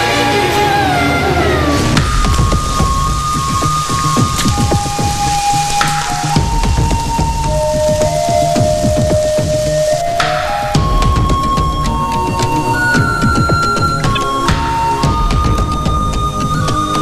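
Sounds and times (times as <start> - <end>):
music with slow held notes: 0.0 - 17.0
steady rain falling: 0.0 - 17.0.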